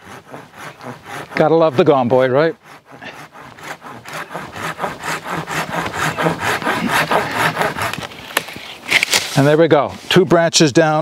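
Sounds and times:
pruning saw rasping through branch: 0.0 - 11.0
branch cracking: 7.8 - 9.4.

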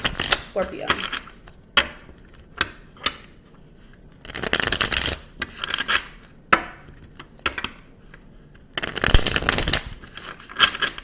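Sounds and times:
cards riffle-shuffled: 3.8 - 6.0, 8.3 - 11.0.

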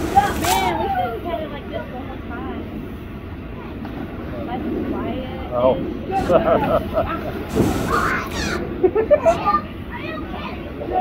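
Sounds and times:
hose spraying: 0.0 - 1.0, 7.3 - 8.6
blower fan rushing: 0.0 - 11.0
children calling out: 7.5 - 11.0.

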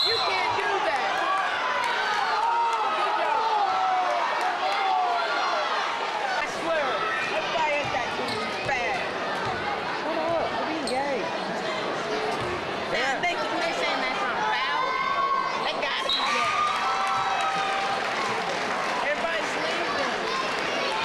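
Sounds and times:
crowd talking and calling out: 0.0 - 21.0.

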